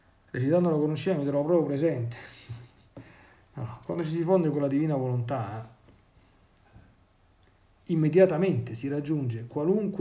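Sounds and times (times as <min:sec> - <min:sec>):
man speaking: 0:00.3 - 0:02.7, 0:03.5 - 0:05.8, 0:07.8 - 0:10.0.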